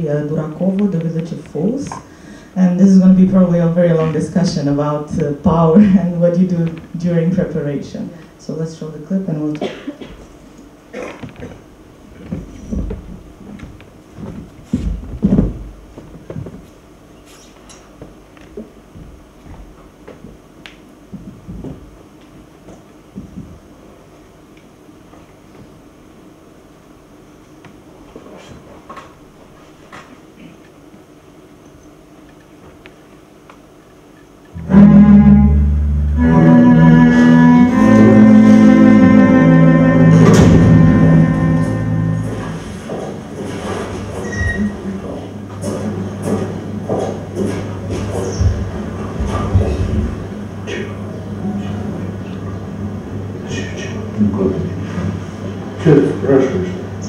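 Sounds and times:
low steady hum: 0.0 - 19.4, 30.3 - 57.0
chairs knocking and clicking: 11.0 - 16.8, 21.1 - 22.0, 42.3 - 50.2.

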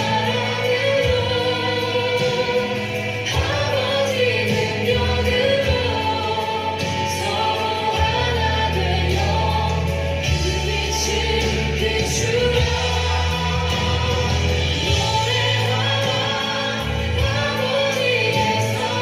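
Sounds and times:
choir singing worship song: 0.0 - 19.0.

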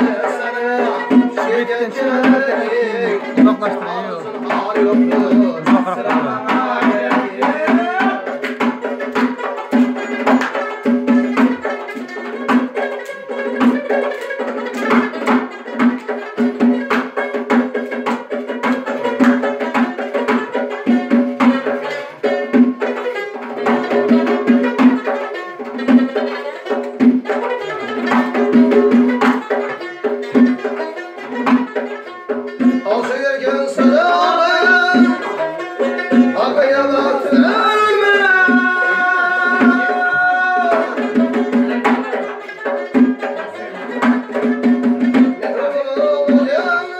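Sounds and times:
person singing: 0.0 - 8.7, 32.6 - 46.9
frame drum beats: 0.0 - 46.9
lute strummed: 0.0 - 46.9.

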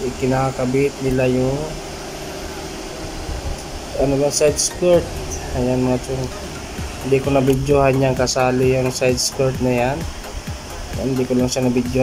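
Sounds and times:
ventilation hum and hiss: 0.0 - 12.0.

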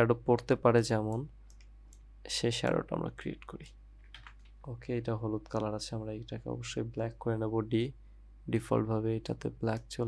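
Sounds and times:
man speaking: 2.3 - 3.7, 4.7 - 10.0
computer keyboard clicks: 3.5 - 4.6.

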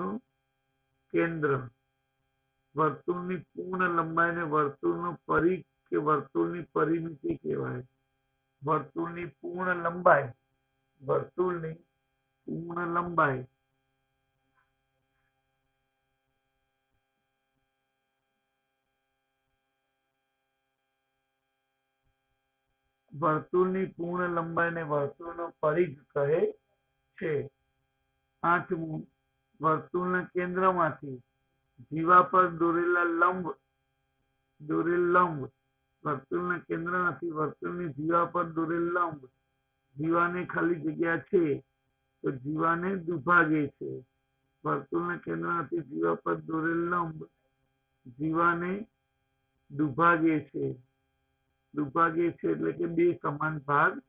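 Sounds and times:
man speaking: 0.0 - 0.2, 1.2 - 1.7, 2.8 - 7.8, 8.6 - 10.3, 11.0 - 11.8, 12.5 - 13.5, 23.2 - 26.5, 27.2 - 27.5, 28.4 - 29.0, 29.6 - 31.2, 31.8 - 33.6, 34.6 - 39.3, 40.0 - 41.6, 42.2 - 44.0, 44.7 - 47.3, 48.1 - 48.9, 49.7 - 50.8, 51.8 - 54.0
faint electrical mains hum: 0.0 - 1.8, 2.7 - 54.0.

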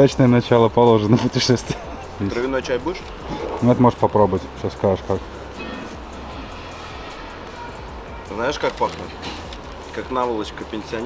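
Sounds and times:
quiet background music: 0.0 - 11.0
steady low hum: 4.2 - 8.6.

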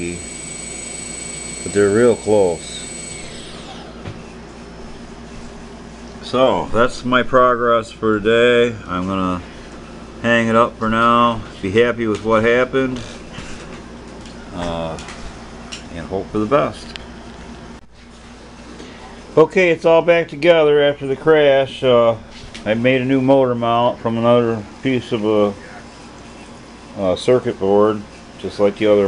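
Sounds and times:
drone motors whining: 0.0 - 4.4
faint hum: 0.0 - 29.0.

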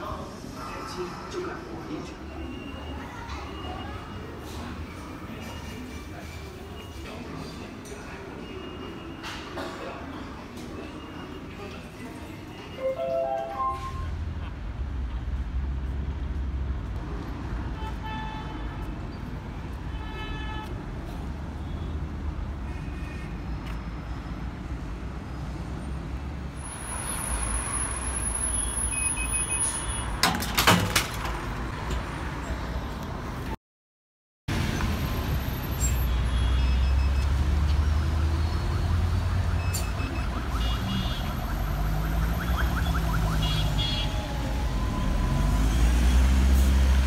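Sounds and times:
traffic rumble: 0.0 - 33.6, 34.5 - 47.0.

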